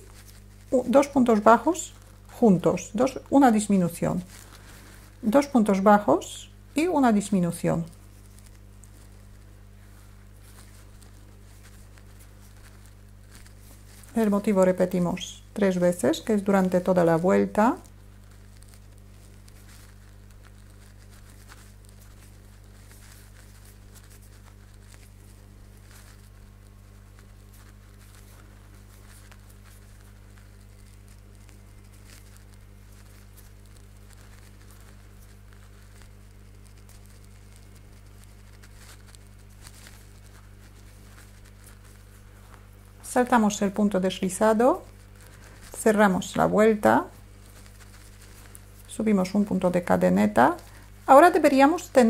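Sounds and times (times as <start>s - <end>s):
steady low hum: 0.0s - 52.0s
thread rustling through stitches: 0.0s - 52.0s.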